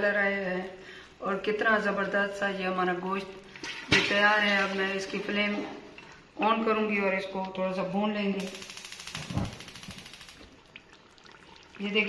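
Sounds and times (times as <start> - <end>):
gas burner hissing and crackling: 8.4 - 10.5.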